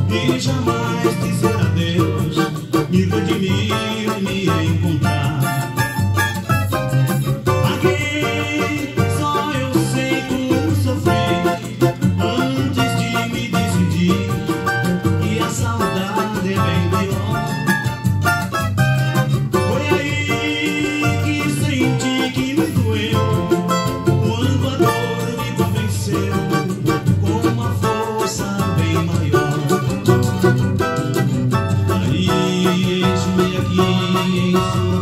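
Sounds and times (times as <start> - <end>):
backing track with bass and beat: 0.0 - 35.0
cavaquinho picking a melody: 0.0 - 35.0.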